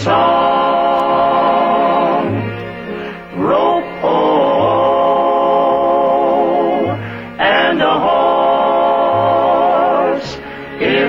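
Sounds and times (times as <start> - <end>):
choir singing long notes: 0.0 - 11.0.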